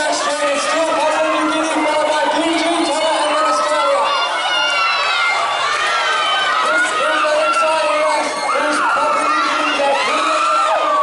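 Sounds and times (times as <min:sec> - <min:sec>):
spectators shouting and cheering: 0:00.0 - 0:11.0.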